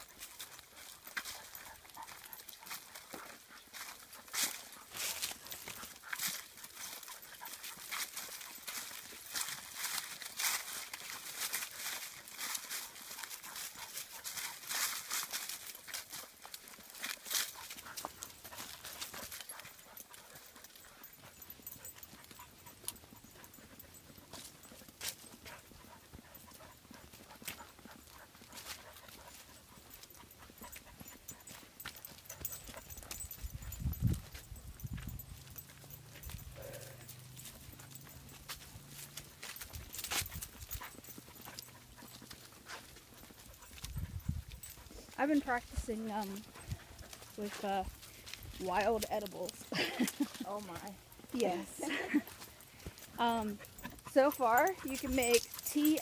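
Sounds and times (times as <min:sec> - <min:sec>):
footsteps in dry leaves: 0:00.0 - 0:21.4, 0:23.3 - 0:56.0.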